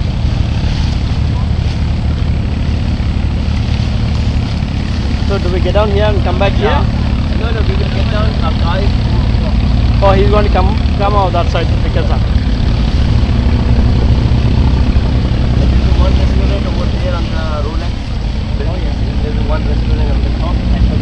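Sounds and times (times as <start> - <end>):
boat engine droning: 0.0 - 21.0
voices talking: 4.6 - 13.8, 14.6 - 21.0.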